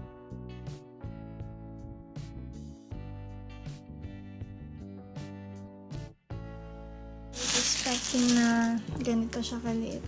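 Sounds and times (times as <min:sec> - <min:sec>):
background music with sustained tones: 0:00.0 - 0:10.0
plastic packaging crinkling: 0:07.4 - 0:08.9.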